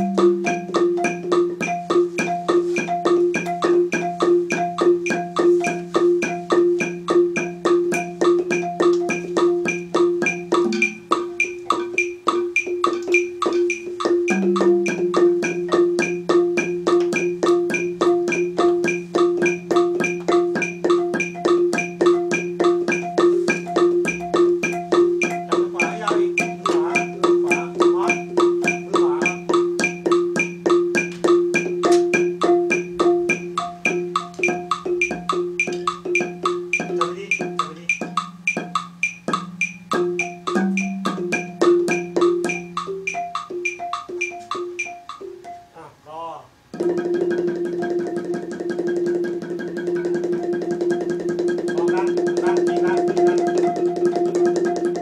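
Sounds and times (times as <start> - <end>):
wooden xylophone ringing notes: 0.0 - 45.8, 46.7 - 55.0.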